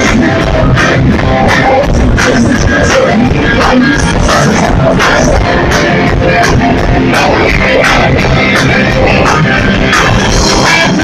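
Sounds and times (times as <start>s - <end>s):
electric guitar: 0.0s - 11.0s
punk rock band playing: 0.0s - 11.0s.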